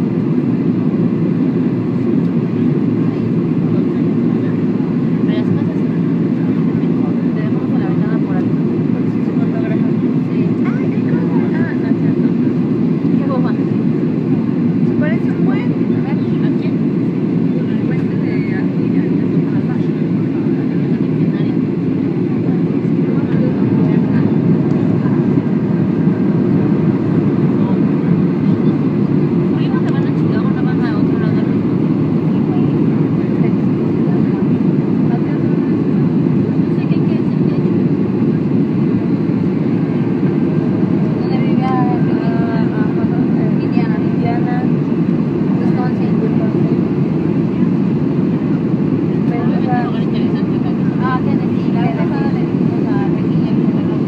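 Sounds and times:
airliner cabin engine roar: 0.0s - 54.0s
passenger voices: 0.0s - 54.0s.

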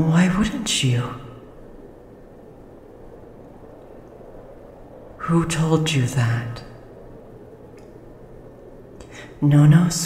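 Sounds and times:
low even hiss: 0.0s - 10.0s.

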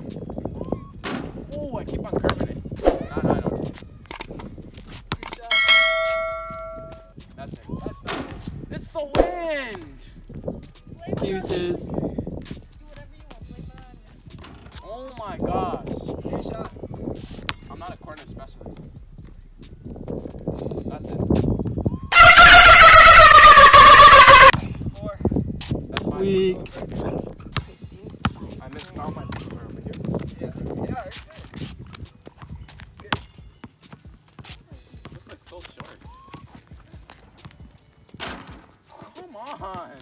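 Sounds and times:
bell chime notification: 5.5s - 7.0s.

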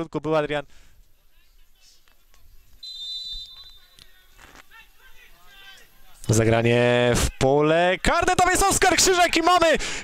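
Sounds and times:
faint shouts of players: 2.7s - 6.3s
short whistle blast: 2.8s - 4.0s.

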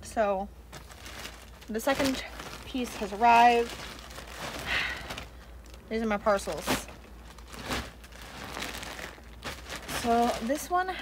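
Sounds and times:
plastic mailers crinkling: 0.7s - 11.0s.

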